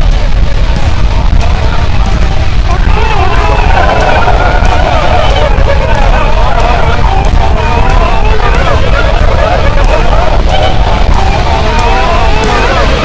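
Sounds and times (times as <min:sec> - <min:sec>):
loud low rumble: 0:00.0 - 0:13.0
voices yelling together: 0:00.0 - 0:13.0.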